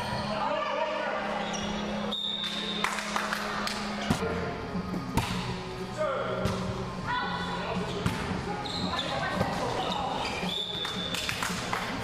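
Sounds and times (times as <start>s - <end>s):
volleyball slaps and thuds: 5.1s - 5.5s.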